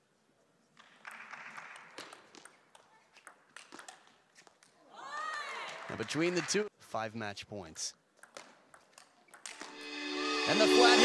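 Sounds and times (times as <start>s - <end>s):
faint crowd applause: 5.0s - 6.7s.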